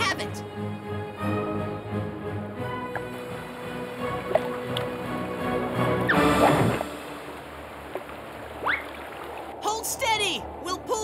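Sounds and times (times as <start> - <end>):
cartoon background music: 0.0 - 7.2.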